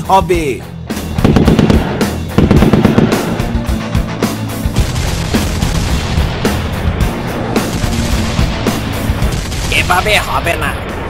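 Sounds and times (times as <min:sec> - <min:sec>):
background music with low drone: 0:00.0 - 0:11.0
rapid automatic rifle fire: 0:01.2 - 0:03.6, 0:07.6 - 0:10.2.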